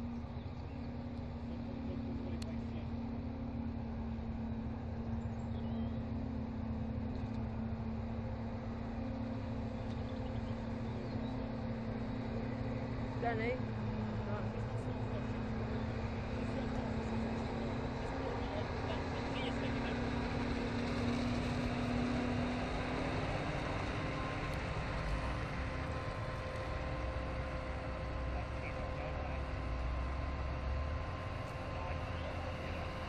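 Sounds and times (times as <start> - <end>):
forage harvester drone: 0.0 - 33.0
tractor engine: 0.0 - 33.0.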